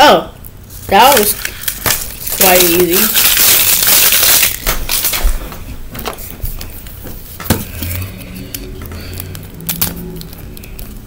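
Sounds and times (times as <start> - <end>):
faint steady hum: 0.0 - 11.0
plastic toy pieces clicking: 1.1 - 5.2.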